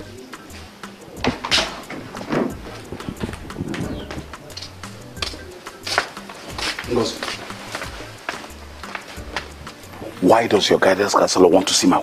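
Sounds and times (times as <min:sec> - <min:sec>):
dove cooing: 0:00.0 - 0:08.3.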